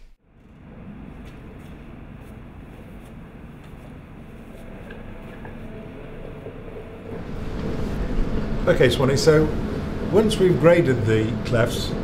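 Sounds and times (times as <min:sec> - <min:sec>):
machine-room rumble: 0:00.0 - 0:12.0.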